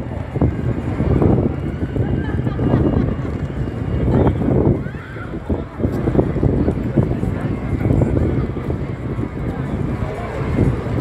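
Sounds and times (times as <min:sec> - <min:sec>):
bus engine rumble: 0:00.0 - 0:11.0
city traffic noise: 0:00.0 - 0:11.0.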